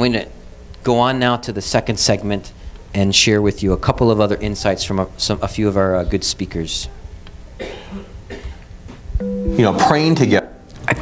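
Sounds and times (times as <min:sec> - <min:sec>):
person coughing: 0:07.6 - 0:08.7.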